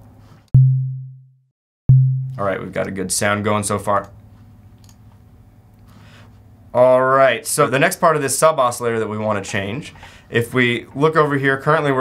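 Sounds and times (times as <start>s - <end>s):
synthesized kick drum: 0.6s - 1.3s, 1.9s - 2.4s.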